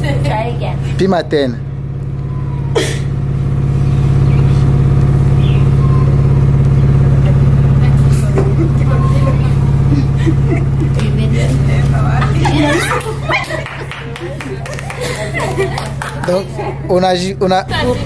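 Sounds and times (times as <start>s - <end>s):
low engine hum: 0.0s - 18.0s
faint voices: 6.8s - 18.0s.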